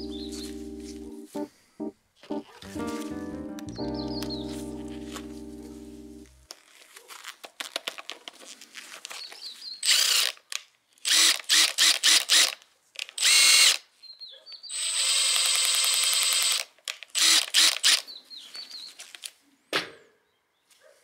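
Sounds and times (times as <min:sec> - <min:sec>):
cordless drill pulsing: 0:09.8 - 0:10.4, 0:11.0 - 0:12.6, 0:13.2 - 0:13.8, 0:14.7 - 0:18.0.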